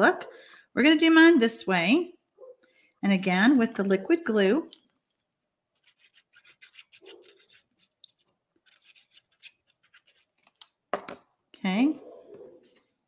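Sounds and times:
glue bottle tip scratching paper: 5.8 - 10.3.

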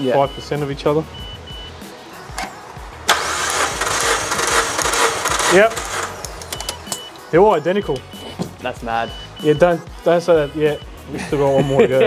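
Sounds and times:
engine cranking on starter: 3.0 - 6.9.

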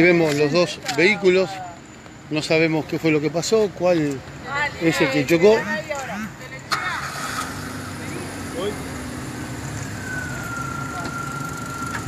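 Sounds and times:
car engines idling: 0.0 - 12.0
thin steady high tone: 8.2 - 12.0.

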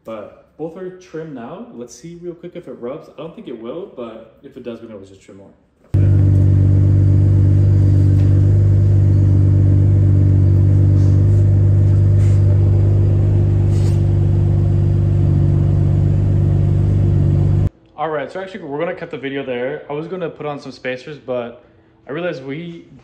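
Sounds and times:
car engine idling loudly: 6.0 - 17.7.

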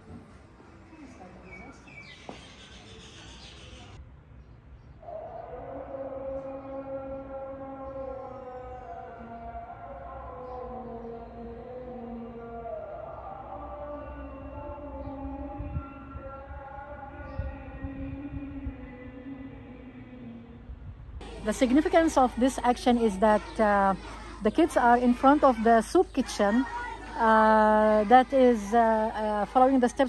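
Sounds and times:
wind rumble on microphone: 14.4 - 21.2.

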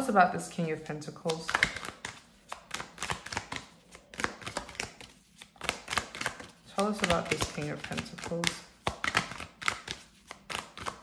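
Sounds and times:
cards being shuffled: 1.2 - 11.0.

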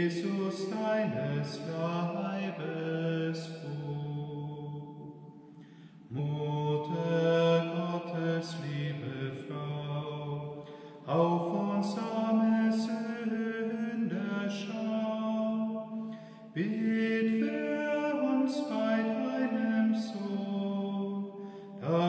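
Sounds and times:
slow vocal chant: 0.0 - 22.0.

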